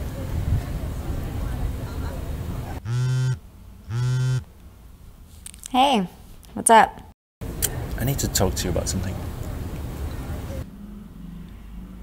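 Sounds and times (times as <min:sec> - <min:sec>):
mobile phone vibrating: 0:02.8 - 0:04.4.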